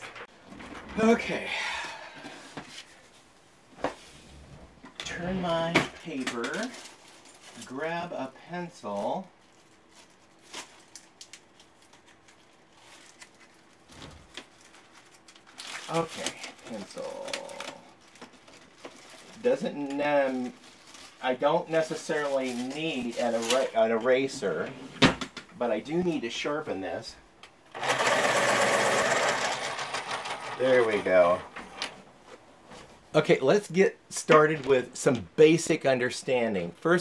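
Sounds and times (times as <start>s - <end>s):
pencils rustling in plastic pouch: 6.5s - 7.8s, 8.8s - 24.1s
electric pencil sharpener grinding: 27.7s - 30.6s.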